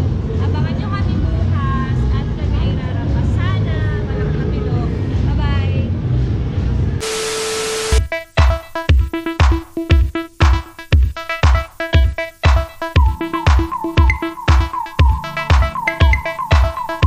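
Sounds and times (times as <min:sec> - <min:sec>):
women talking: 0:00.4 - 0:05.8
steady hiss with held tone: 0:07.0 - 0:17.0.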